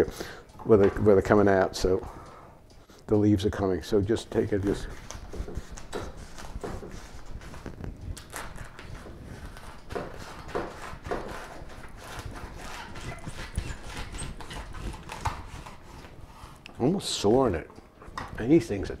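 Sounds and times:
knife cutting artichoke on wooden board: 0:04.8 - 0:16.0.

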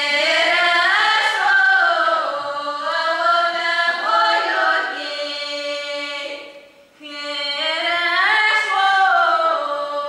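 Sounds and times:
girls singing unaccompanied: 0:00.0 - 0:10.0.

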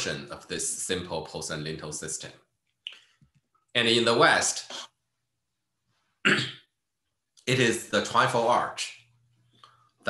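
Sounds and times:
man speaking a word: 0:00.0 - 0:02.3.

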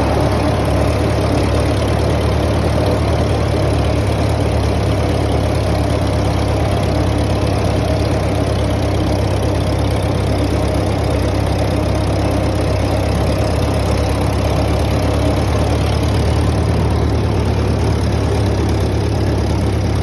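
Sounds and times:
mower working: 0:00.0 - 0:20.0
tractor engine running: 0:00.0 - 0:20.0.

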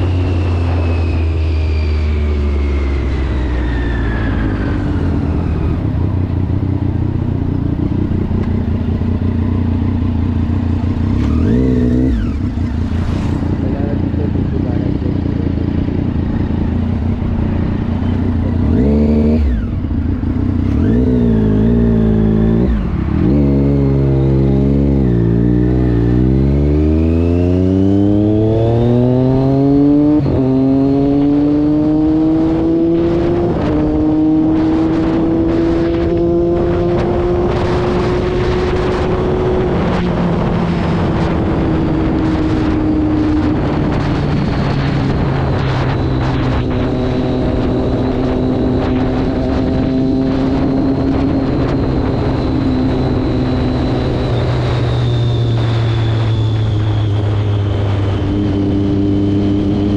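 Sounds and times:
motorcycle engine accelerating: 0:00.0 - 0:59.9.

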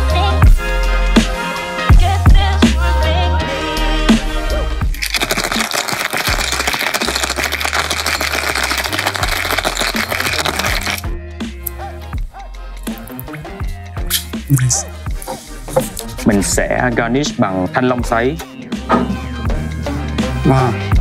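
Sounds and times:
background music with a beat: 0:00.0 - 0:05.9, 0:06.5 - 0:21.0
ice rattling in cocktail shaker: 0:04.9 - 0:11.0.

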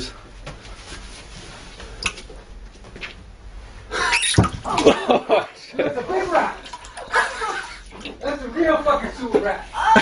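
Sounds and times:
steady low hum: 0:00.0 - 0:09.8.

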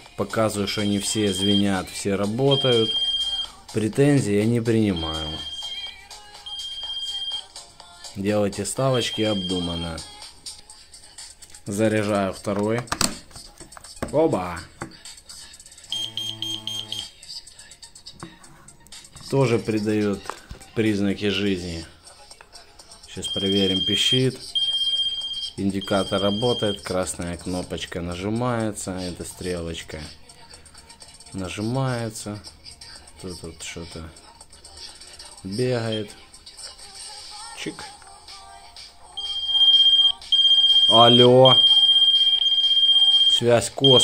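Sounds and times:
pager beeping: 0:00.7 - 0:03.5, 0:04.9 - 0:07.5, 0:09.0 - 0:10.0, 0:15.9 - 0:17.2, 0:23.2 - 0:26.9, 0:39.2 - 0:44.0.

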